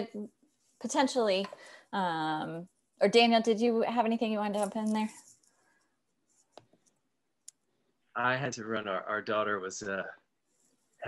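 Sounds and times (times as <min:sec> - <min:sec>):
person speaking: 0:04.4 - 0:05.2, 0:08.2 - 0:10.1.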